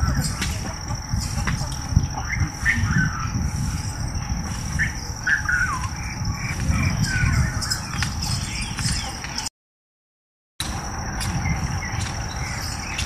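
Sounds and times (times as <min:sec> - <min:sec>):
steady low rumble: 0:00.0 - 0:09.4, 0:10.6 - 0:13.0.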